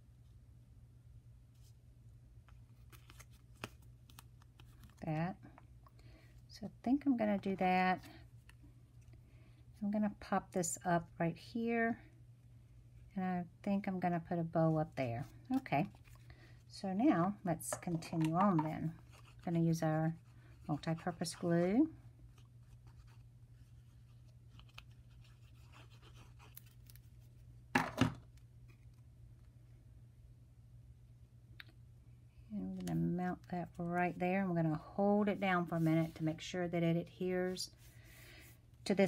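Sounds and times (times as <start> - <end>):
handling cardstock on a tabletop: 1.5 - 9.2, 14.1 - 29.2, 32.7 - 39.0
woman speaking: 6.5 - 8.1, 9.8 - 12.0, 13.2 - 15.9, 16.8 - 22.0, 32.5 - 37.8.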